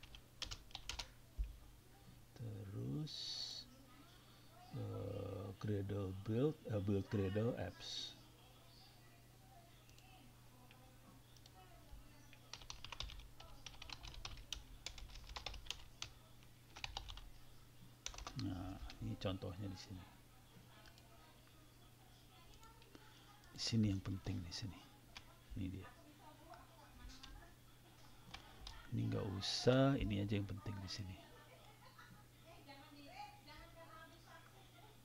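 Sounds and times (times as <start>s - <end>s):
typing on computer keyboard: 0.0s - 1.1s, 12.5s - 16.1s, 16.7s - 17.2s, 18.0s - 19.0s
faint low hum: 0.0s - 35.0s.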